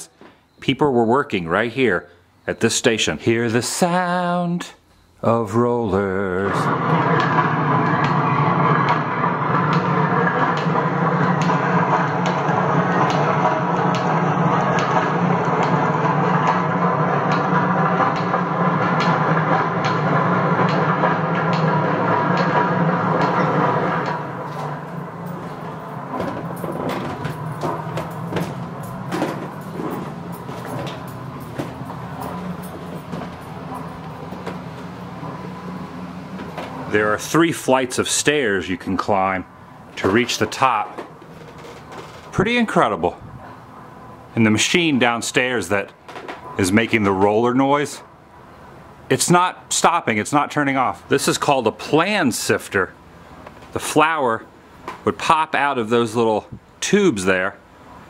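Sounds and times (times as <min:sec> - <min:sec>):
mill machinery rumble and clatter: 0:05.3 - 0:58.0
irregular knocks: 0:06.8 - 0:36.9.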